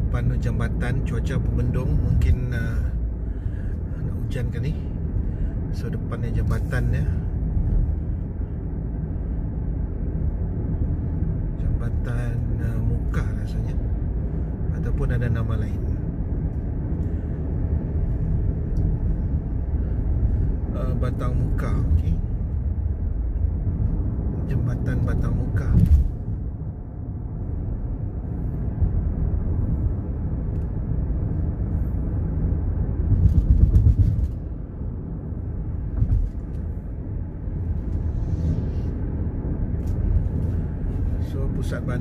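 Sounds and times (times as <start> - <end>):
car engine and tyre rumble: 0.0 - 42.0.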